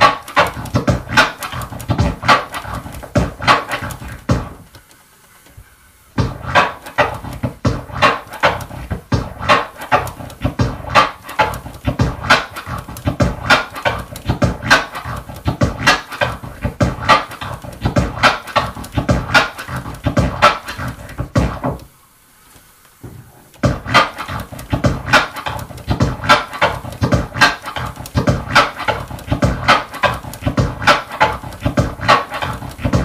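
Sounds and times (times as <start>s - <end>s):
vinyl scratching on a turntable: 0.0s - 33.0s.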